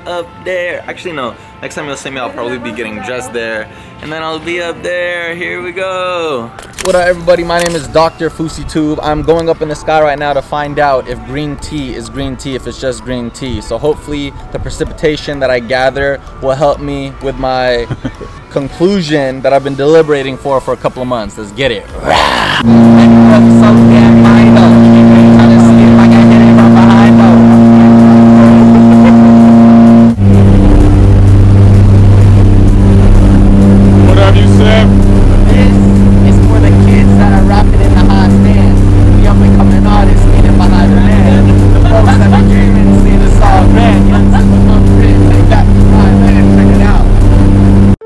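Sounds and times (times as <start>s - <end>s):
electronic music: 22.0s - 48.0s.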